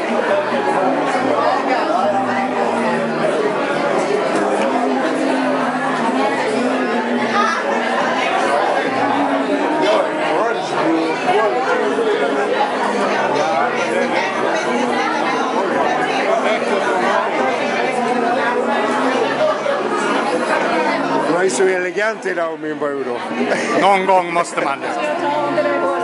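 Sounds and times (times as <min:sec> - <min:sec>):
crowd chatter: 0:00.0 - 0:26.0.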